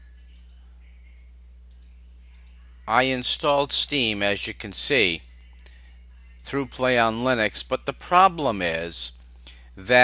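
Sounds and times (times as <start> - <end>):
low electrical hum: 0.0 - 10.0
computer mouse clicks: 1.7 - 2.6.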